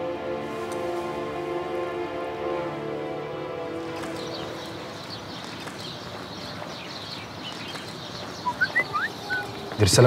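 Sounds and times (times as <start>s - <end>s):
birds chirping: 3.0s - 10.0s.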